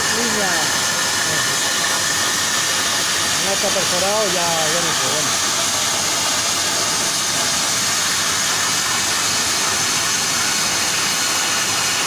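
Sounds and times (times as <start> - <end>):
plasma cutter hissing: 0.0 - 12.0.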